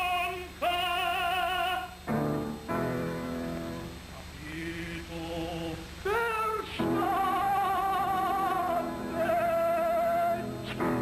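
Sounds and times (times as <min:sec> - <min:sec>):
operatic tenor singing: 0:00.0 - 0:02.0, 0:04.4 - 0:11.0.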